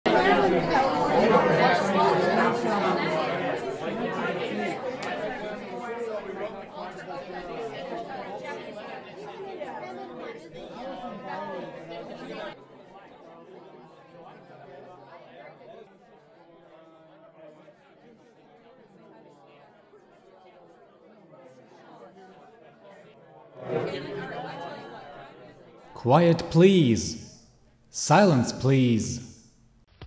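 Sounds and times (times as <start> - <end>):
crowd chattering indoors: 0.1 - 27.4.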